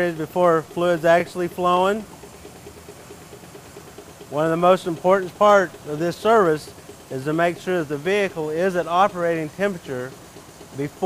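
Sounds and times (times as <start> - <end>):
car engine idling: 0.0 - 11.0
vacuum extractor drawing fluid: 0.0 - 11.0.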